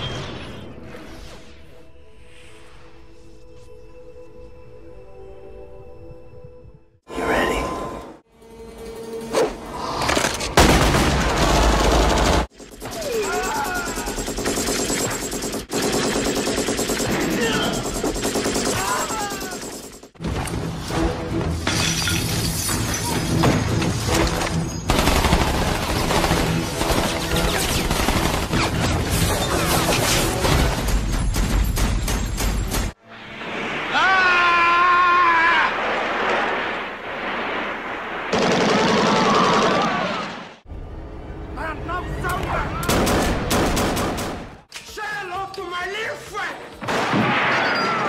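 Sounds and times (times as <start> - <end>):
people shouting: 12.9 - 14.3, 18.6 - 19.7, 33.9 - 35.8
man screaming: 13.0 - 14.2, 33.9 - 35.8.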